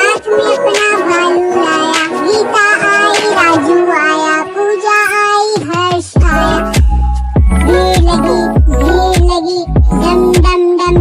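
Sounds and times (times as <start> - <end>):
child singing: 0.0 - 11.0
deep bass beat: 6.2 - 11.0.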